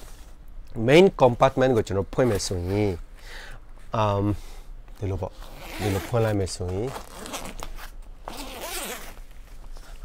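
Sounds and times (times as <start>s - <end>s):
backpack zipper pulled open: 5.5s - 6.2s, 7.0s - 9.2s.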